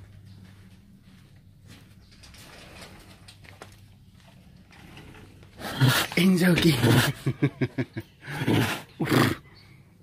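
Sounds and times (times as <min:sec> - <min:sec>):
tiger vocalizing: 0:05.6 - 0:07.2, 0:08.2 - 0:09.6.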